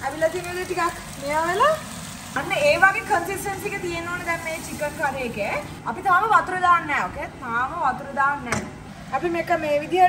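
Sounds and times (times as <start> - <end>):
woman speaking: 2.4 - 10.0.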